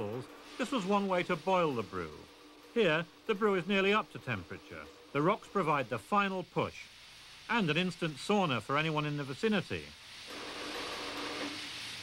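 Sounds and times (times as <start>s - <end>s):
steam hissing and sizzling: 0.0s - 12.0s.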